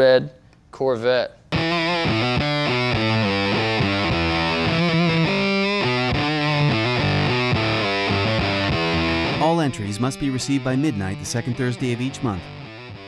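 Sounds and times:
distorted electric guitar riff: 1.6s - 13.0s.

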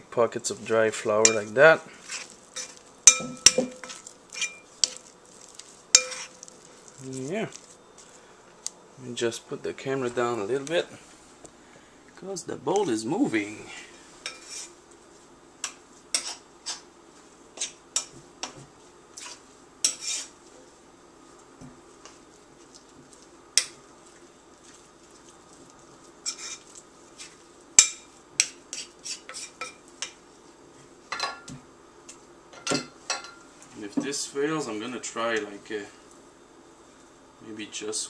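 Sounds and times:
metal spoon scraping ceramic bowl: 5.9s - 6.4s.

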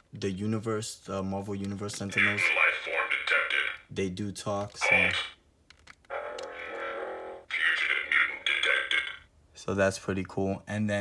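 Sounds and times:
choppy robotic voice: 2.0s - 4.0s, 4.7s - 5.4s, 6.1s - 9.3s.

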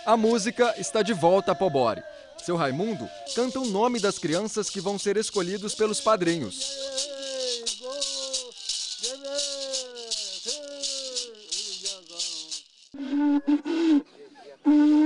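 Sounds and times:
man chanting: 0.0s - 12.6s
rattle shaken rapidly: 2.4s - 13.0s.

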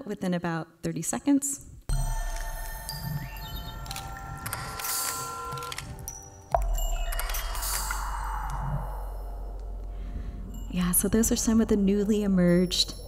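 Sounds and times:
bell-like chime tones: 1.9s - 5.5s, 6.1s - 13.0s.

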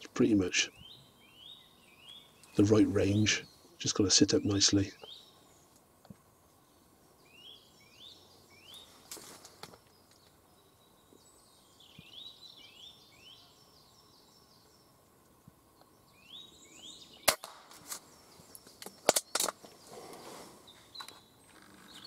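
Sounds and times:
bird chirping: 0.2s - 22.0s
air rifle cracks and clicks: 17.3s - 18.0s, 18.8s - 19.6s.

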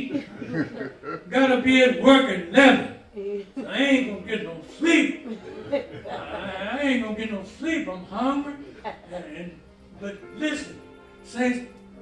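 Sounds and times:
man preaching into microphone: 1.3s - 3.0s, 3.6s - 5.2s, 6.3s - 11.7s.

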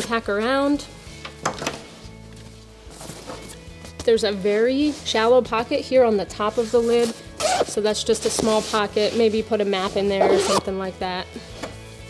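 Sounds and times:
quiet background music: 0.0s - 12.0s
backpack fabric rustling: 1.8s - 4.1s, 6.5s - 10.8s.

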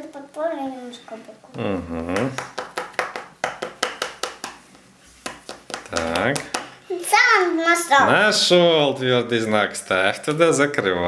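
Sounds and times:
game chip tapping on board: 2.2s - 6.7s.

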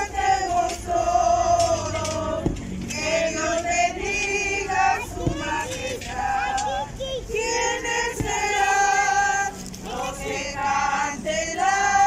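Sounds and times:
women singing a hymn: 0.0s - 12.0s.

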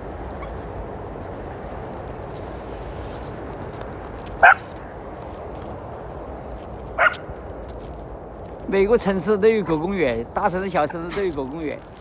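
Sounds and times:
dog barking: 4.4s - 4.7s, 7.0s - 7.3s.

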